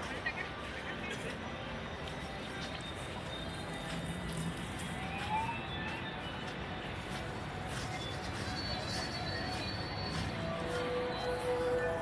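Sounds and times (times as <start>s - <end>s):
faint music: 0.0s - 12.0s
steady background noise: 0.0s - 12.0s.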